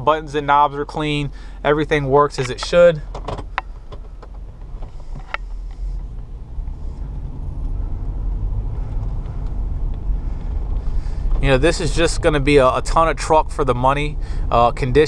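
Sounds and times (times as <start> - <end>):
engine and road rumble in car: 0.0 - 15.0.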